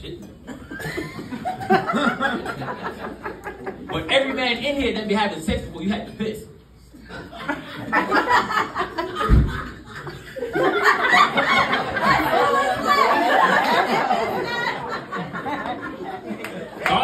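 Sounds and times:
people laughing: 0:00.5 - 0:04.1, 0:07.0 - 0:17.0
low thump: 0:09.2 - 0:09.7.

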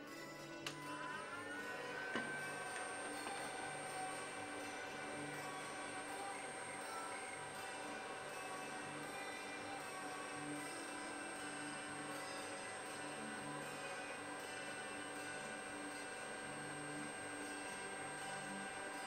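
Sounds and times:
electronics whine over low hum: 0:01.0 - 0:19.0.

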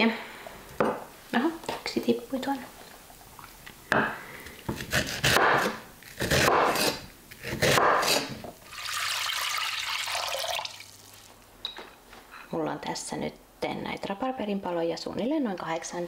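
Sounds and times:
knife cutting rhubarb on board: 0:04.7 - 0:08.4.

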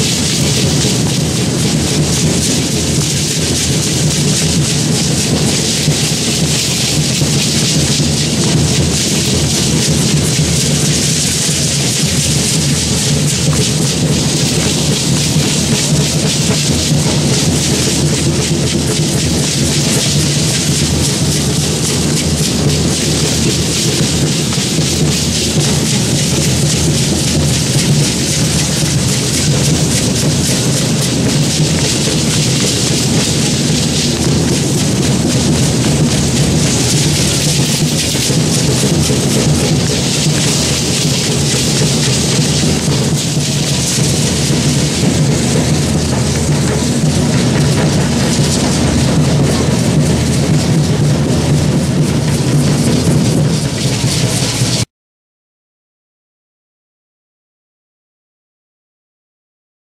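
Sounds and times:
rattles shaking: 0:00.0 - 0:54.8
drum beating steadily: 0:00.0 - 0:54.9.

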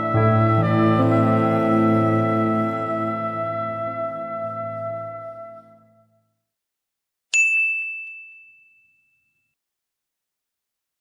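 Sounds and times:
high bright ding chime: 0:07.4 - 0:09.4.

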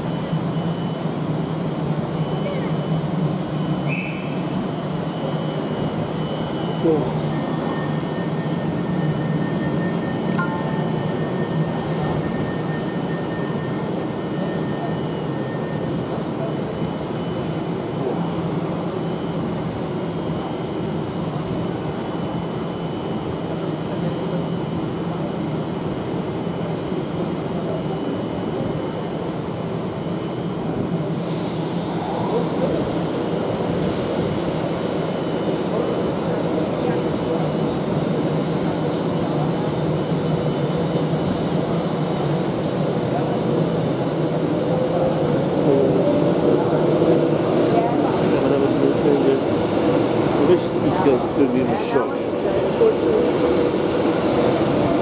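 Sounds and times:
rising train whine: 0:00.0 - 0:55.0.

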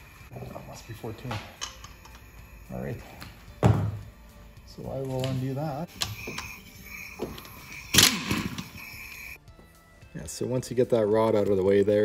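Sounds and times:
air ratchet whining: 0:00.0 - 0:03.3, 0:05.1 - 0:09.4.

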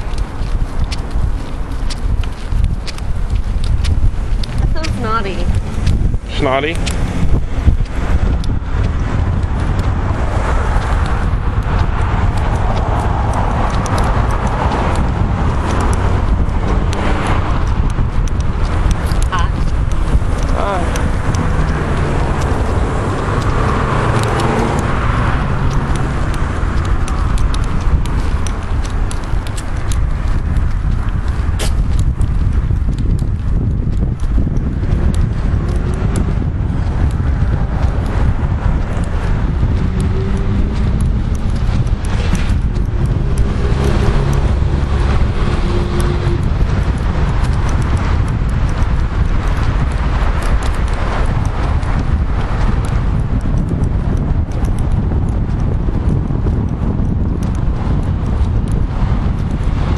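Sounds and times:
footsteps on pavement: 0:00.0 - 0:59.9
heavy low rumble: 0:00.0 - 0:59.9.

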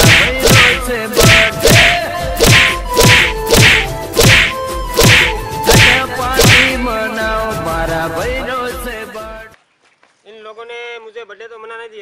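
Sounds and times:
boards whacking a person: 0:00.0 - 0:06.8.

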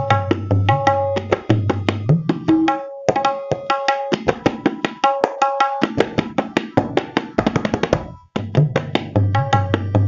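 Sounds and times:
fast tabla strokes: 0:00.0 - 0:10.0.

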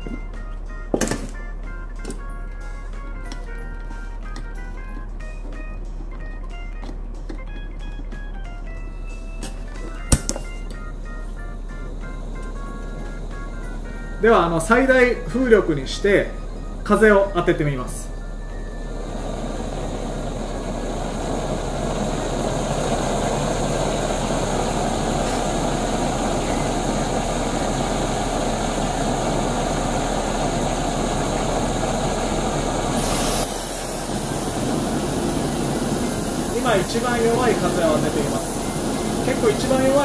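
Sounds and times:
fan airflow rushing: 0:08.2 - 0:40.0
gas burner hissing: 0:08.2 - 0:40.0.

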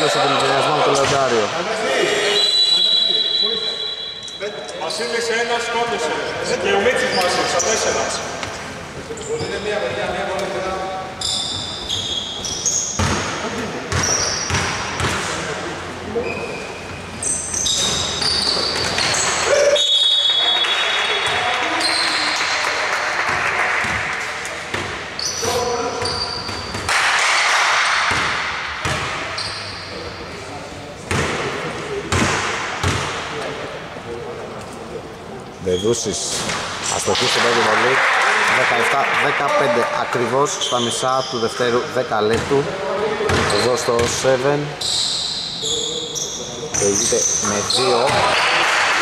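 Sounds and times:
sneakers squeaking: 0:00.0 - 0:05.6, 0:06.3 - 0:10.2, 0:11.0 - 0:33.6, 0:35.2 - 0:37.6, 0:40.1 - 0:48.6
players' voices echoing: 0:00.0 - 0:49.0
basketball bouncing on gym floor: 0:12.4 - 0:15.3, 0:28.1 - 0:29.3, 0:31.1 - 0:31.5, 0:32.1 - 0:33.3, 0:42.3 - 0:42.7, 0:43.3 - 0:44.2.

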